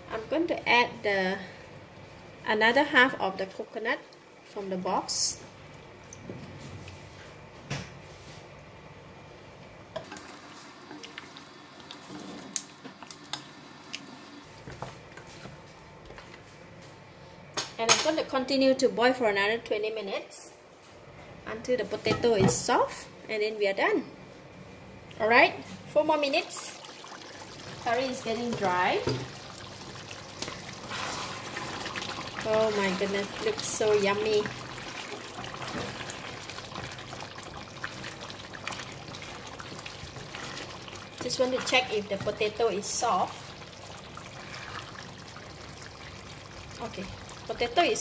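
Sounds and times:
thick curry bubbling: 26.8s - 47.8s
soft wet stirring: 26.8s - 47.9s.

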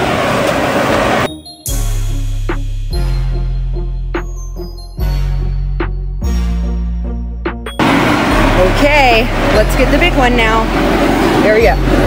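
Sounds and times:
blower fans rushing: 0.0s - 1.4s, 7.8s - 12.0s
music with deep bass: 1.3s - 12.0s.

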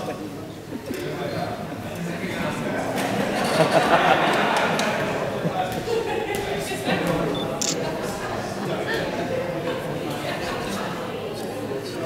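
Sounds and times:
chatter echoing in a hall: 0.0s - 12.0s.

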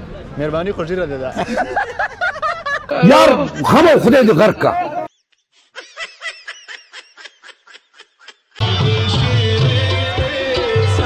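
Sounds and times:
person snickering laugh: 5.4s - 8.6s.

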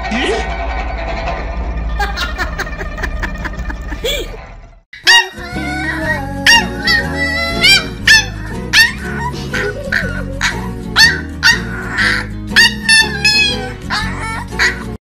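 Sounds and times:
background music: 5.0s - 15.0s
puppy yipping: 5.0s - 15.0s.

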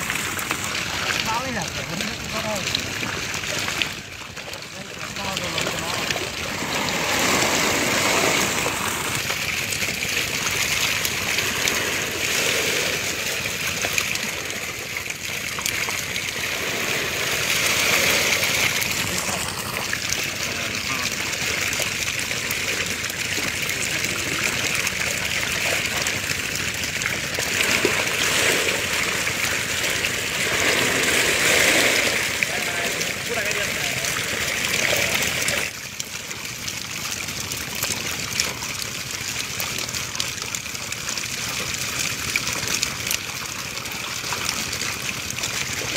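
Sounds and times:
water splashing and sloshing: 0.0s - 45.9s
men talking: 1.2s - 2.9s, 4.7s - 6.3s, 19.0s - 19.7s, 20.4s - 21.2s, 32.4s - 34.2s.

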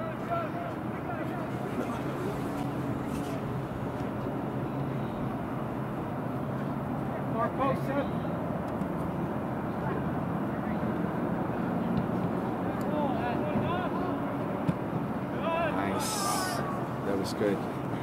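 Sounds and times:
distant players shouting: 0.0s - 4.1s, 12.7s - 14.4s, 15.3s - 17.9s.

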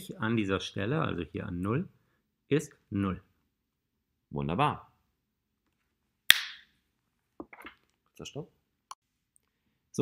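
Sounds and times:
hand snap: 6.3s - 6.7s.

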